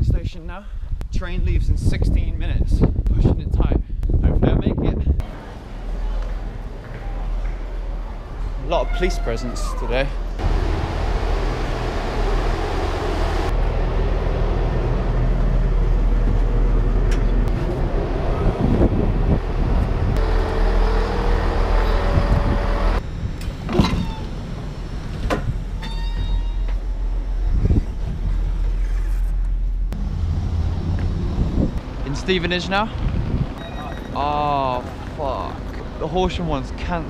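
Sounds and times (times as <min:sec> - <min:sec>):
trains rumbling: 0:05.2 - 0:37.0.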